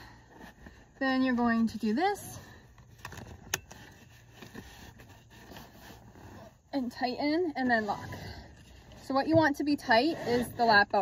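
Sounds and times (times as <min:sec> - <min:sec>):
seat belt webbing rustling: 0:00.0 - 0:11.0.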